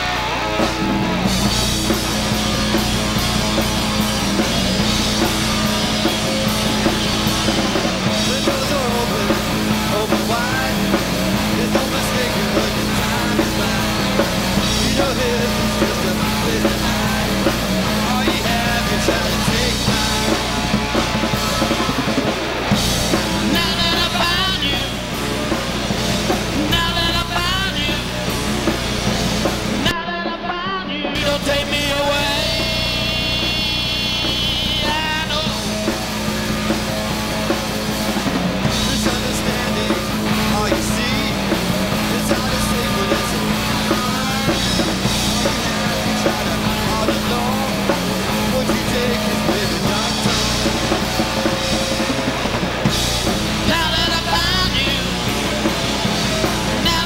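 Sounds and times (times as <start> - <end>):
hard rock band playing: 0.0 - 57.0
man singing lead: 0.0 - 57.0.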